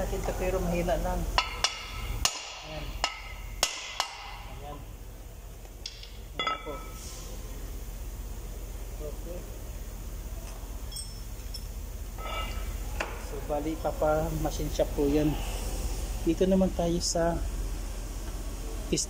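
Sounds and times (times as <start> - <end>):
metallic knocks and clinks on brake disc: 1.4 - 4.5, 5.8 - 7.0, 10.8 - 13.3.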